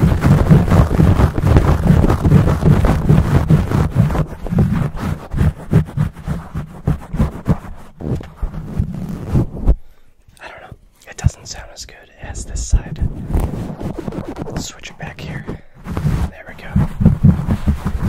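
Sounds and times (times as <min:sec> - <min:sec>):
fingers scratching microphone: 0:00.0 - 0:18.0.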